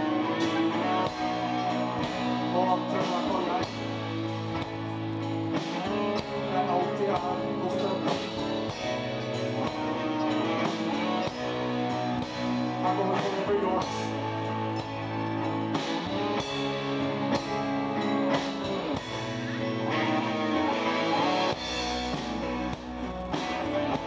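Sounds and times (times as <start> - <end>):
rock band playing: 0.0 - 24.0.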